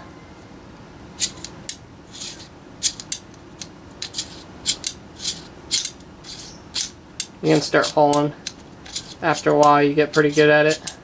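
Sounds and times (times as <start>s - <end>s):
revolver mechanism metallic clicks: 1.2s - 11.0s.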